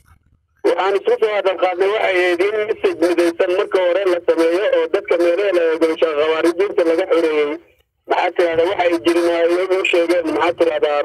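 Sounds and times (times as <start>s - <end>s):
man talking over phone line: 0.6s - 11.0s.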